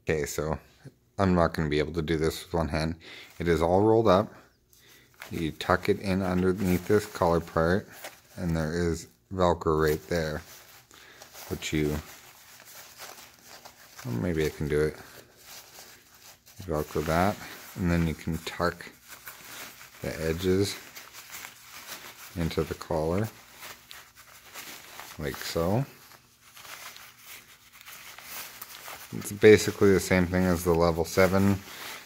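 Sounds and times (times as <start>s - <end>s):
jacket fabric rustling: 1.6s - 32.0s.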